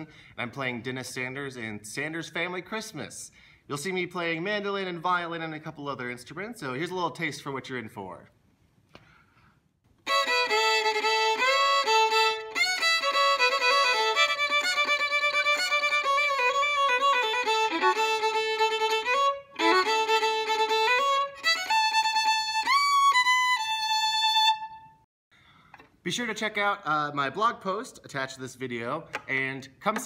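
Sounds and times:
solo fiddle playing: 10.0s - 25.0s.

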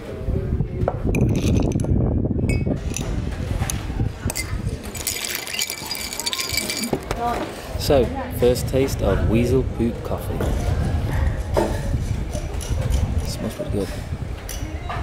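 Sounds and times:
ice cubes clinking in a glass: 4.3s - 7.1s.

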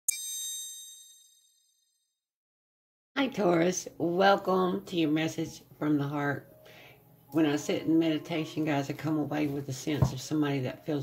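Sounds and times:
bell-like chime: 0.1s - 2.1s.

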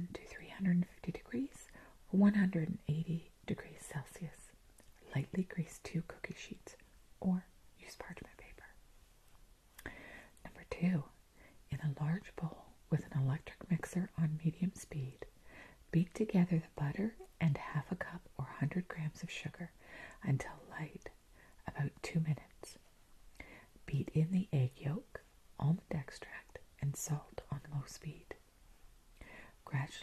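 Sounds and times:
woman whispering softly: 0.0s - 8.8s, 9.8s - 28.4s, 29.2s - 30.0s.

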